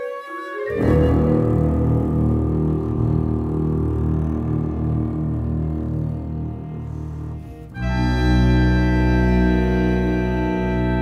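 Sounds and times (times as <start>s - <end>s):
chamber ensemble low sustained notes: 0.7s - 11.0s.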